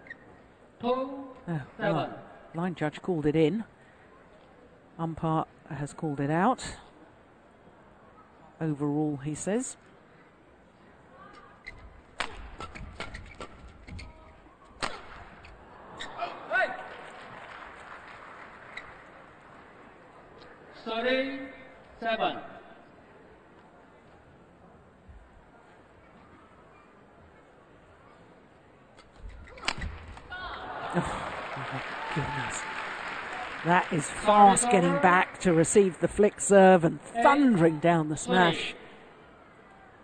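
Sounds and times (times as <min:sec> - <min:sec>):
shoes squeaking on court: 0:00.0 - 0:00.4, 0:11.3 - 0:16.2
rackets hitting shuttlecock: 0:12.2 - 0:14.0, 0:14.8 - 0:15.5
crowd noise: 0:13.8 - 0:40.0.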